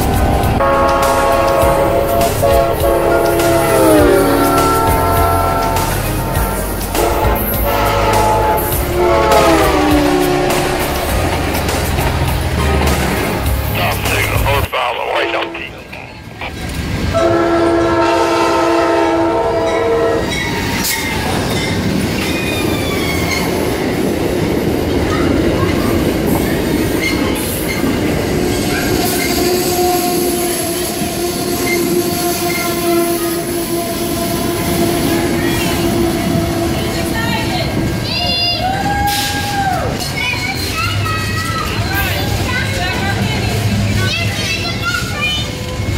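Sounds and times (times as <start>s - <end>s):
train wheel clatter: 0.0s - 14.6s
locomotive horn chord: 0.0s - 15.8s, 17.1s - 20.4s, 28.9s - 37.9s
heavy engine rumble: 0.0s - 16.8s
wheel squeal: 19.7s - 23.7s.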